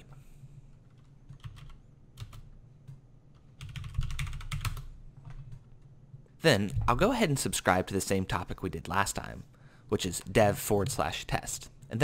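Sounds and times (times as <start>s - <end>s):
computer keyboard typing: 0.9s - 5.7s.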